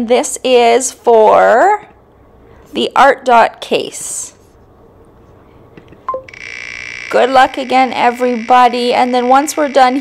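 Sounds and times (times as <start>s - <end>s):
buzzy spinning tone: 6.3s - 10.0s.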